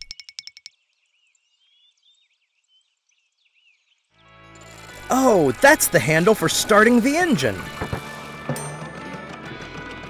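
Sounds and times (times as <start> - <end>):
birdsong chirping: 0.1 - 4.2.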